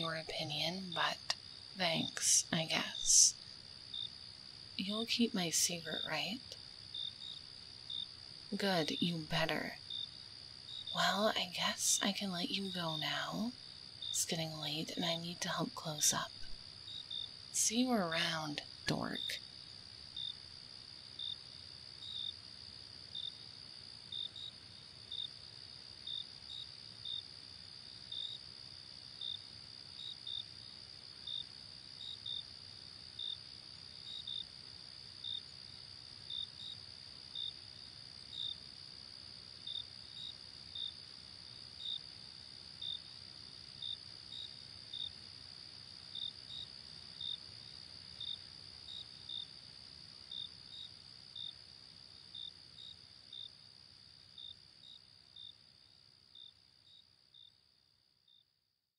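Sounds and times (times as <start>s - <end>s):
crickets chirping: 0.0s - 58.5s.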